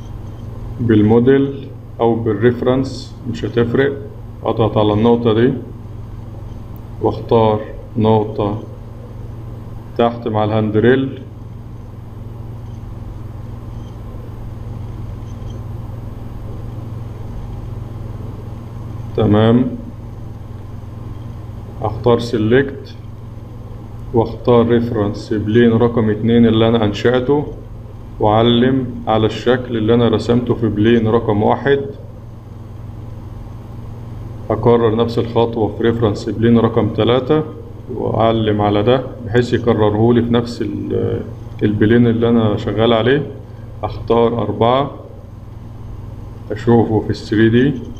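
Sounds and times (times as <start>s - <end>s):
low electrical hum: 0.0s - 47.9s.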